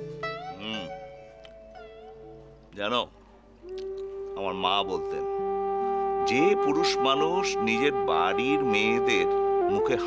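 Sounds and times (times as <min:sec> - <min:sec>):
sustained background music: 0:00.0 - 0:10.0.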